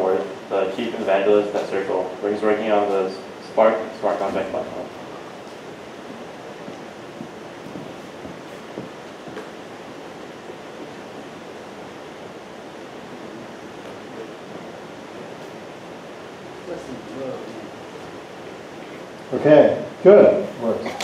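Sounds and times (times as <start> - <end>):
steady recording hiss: 0.0 - 21.0.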